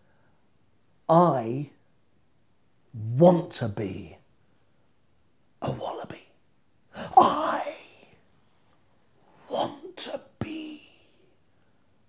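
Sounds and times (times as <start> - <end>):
man speaking theatrically: 1.1 - 1.8, 3.0 - 4.2, 5.6 - 6.3, 7.0 - 8.1, 9.4 - 11.2.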